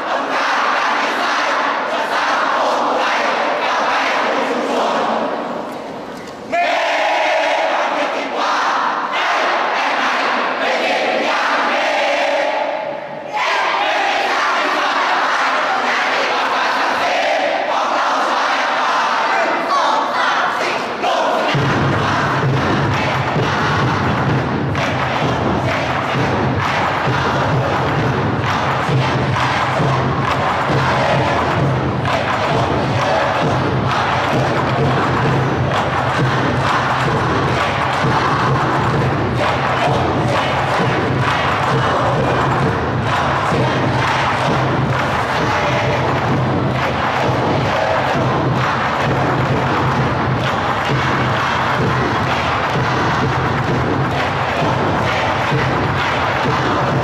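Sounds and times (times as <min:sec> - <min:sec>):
crowd chanting and cheering: 0:00.0 - 0:57.0
drum beats: 0:21.3 - 0:57.0
loud music: 0:21.4 - 0:57.0.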